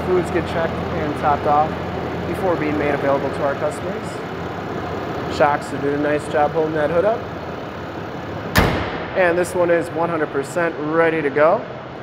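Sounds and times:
diesel engine idling: 0.0s - 12.0s
truck hood slammed shut: 8.5s - 9.2s.

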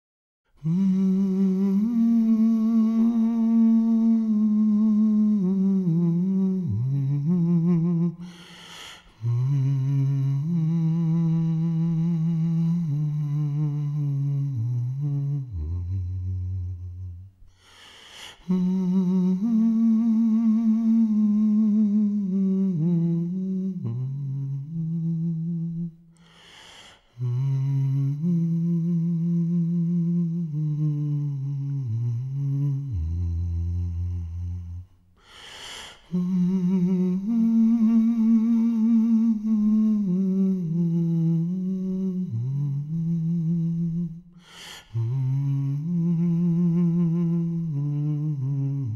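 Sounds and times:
man humming a slow melody: 0.5s - 8.4s, 9.1s - 17.3s, 18.4s - 26.3s, 27.1s - 35.0s, 36.0s - 48.9s.

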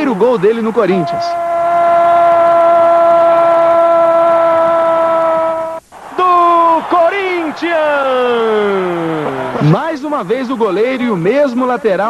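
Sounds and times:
man shouting goal: 0.8s - 9.8s.

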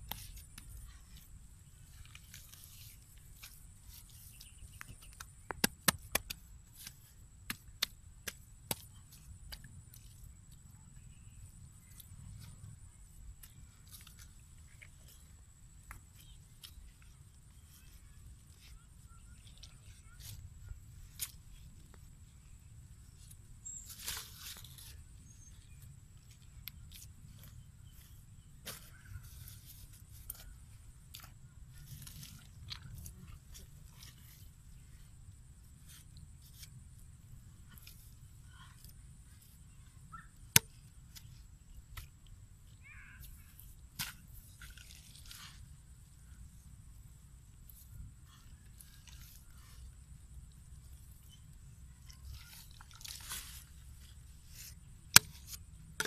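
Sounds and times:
hands patting wet mud: 0.0s - 22.1s, 40.2s - 45.8s.

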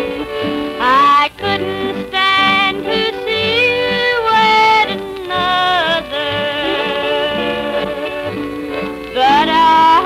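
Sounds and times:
accordion: 0.0s - 10.0s
bass fiddle and guitars: 0.0s - 10.0s
woman singing: 0.8s - 10.0s.

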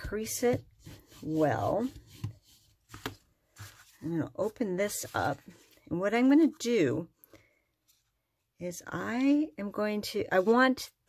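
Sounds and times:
paper rustling: 0.8s - 5.9s.

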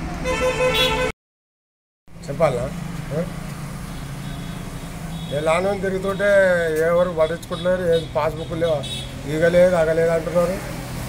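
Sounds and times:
street noise: 0.0s - 1.2s, 2.1s - 11.0s
vehicle engine humming: 2.1s - 11.0s.

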